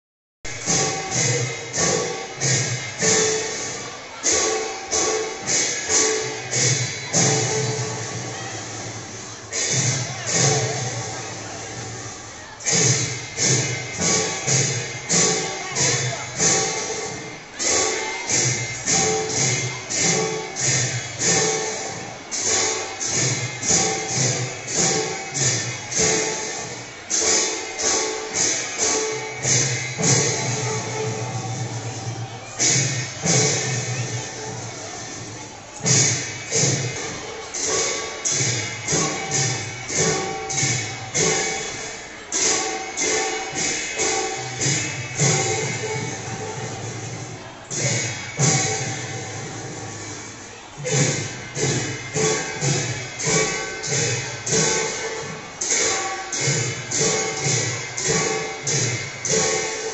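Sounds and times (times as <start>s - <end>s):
barrel drums: 0.5s - 59.9s
hand cymbals clashing: 0.5s - 59.9s.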